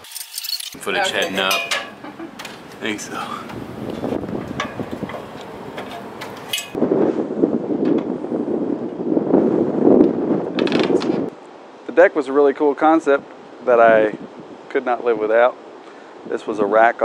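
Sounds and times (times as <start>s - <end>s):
metal ladder clicking and clanking: 0.0s - 6.8s.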